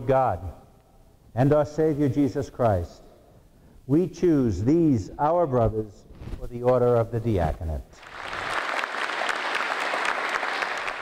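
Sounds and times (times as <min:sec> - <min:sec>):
congregation applauding: 0:08.0 - 0:11.0.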